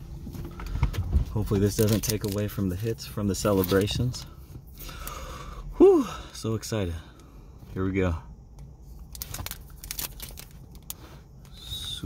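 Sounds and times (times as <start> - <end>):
foil wrapper crinkling: 1.4 - 4.2, 8.9 - 11.1.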